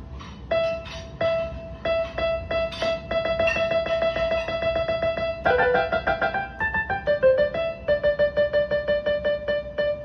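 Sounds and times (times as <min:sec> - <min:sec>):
piano repeating a high note: 0:00.0 - 0:10.0.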